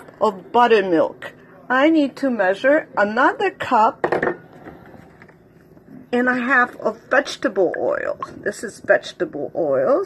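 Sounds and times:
low room noise: 0:00.0 - 0:10.0
kitchenware knock on counter: 0:04.0 - 0:04.4.

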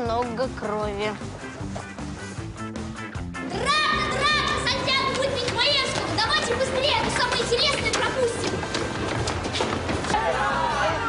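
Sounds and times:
children's voices: 0:03.5 - 0:08.9
footsteps on stairs: 0:04.2 - 0:10.2.

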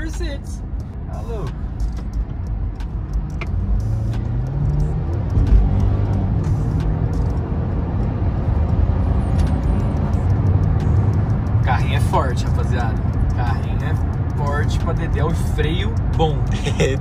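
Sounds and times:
car engine accelerating: 0:00.0 - 0:17.0
road noise: 0:00.0 - 0:17.0.

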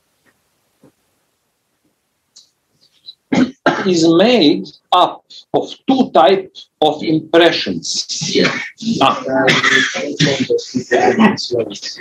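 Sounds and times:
person speaking: 0:02.9 - 0:12.0
person coughing: 0:03.3 - 0:04.0, 0:08.4 - 0:11.4.

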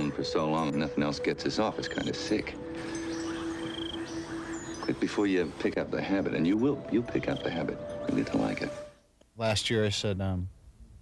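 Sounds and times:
high chirping trill: 0:01.5 - 0:05.6.

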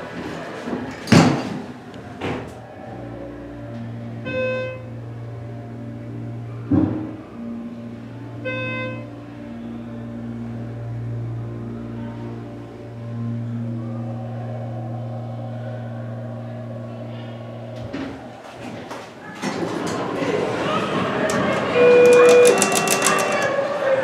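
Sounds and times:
elevator drive humming: 0:00.0 - 0:24.0
doors sliding open: 0:09.0 - 0:24.0
door clicks: 0:21.3 - 0:23.5.

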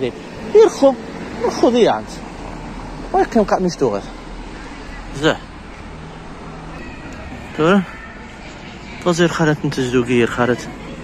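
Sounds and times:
background noise: 0:00.0 - 0:11.0.

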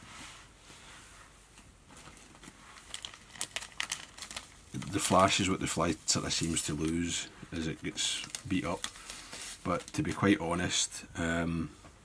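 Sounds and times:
fingers rustling materials: 0:01.5 - 0:10.2.

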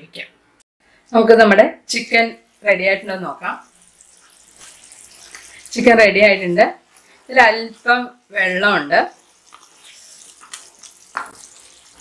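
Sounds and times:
spatula stirring wet food in pan: 0:02.4 - 0:12.0.

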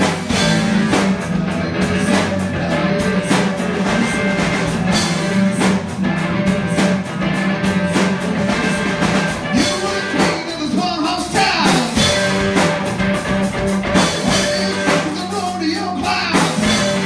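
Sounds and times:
bass guitar: 0:00.0 - 0:17.0
drum beat: 0:00.0 - 0:17.0
electric guitar: 0:00.0 - 0:17.0
person singing: 0:00.3 - 0:12.6, 0:14.0 - 0:17.0.

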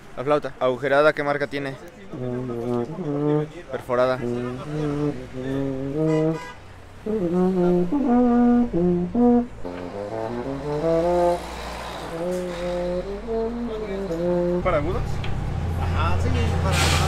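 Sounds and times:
baritone horn short held notes: 0:02.1 - 0:15.1.

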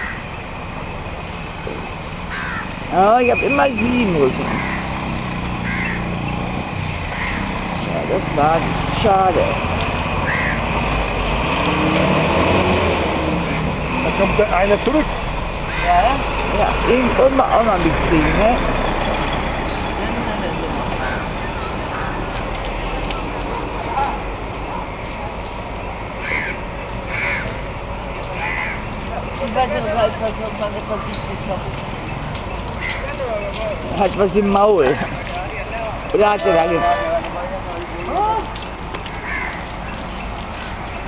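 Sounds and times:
street background noise: 0:00.0 - 0:41.0
faint voices: 0:13.9 - 0:40.7.

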